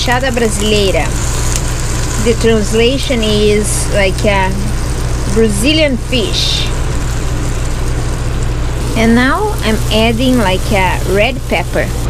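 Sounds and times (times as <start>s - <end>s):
steady low hum: 0.0s - 12.0s
vegetables sizzling in a skillet: 0.0s - 12.0s.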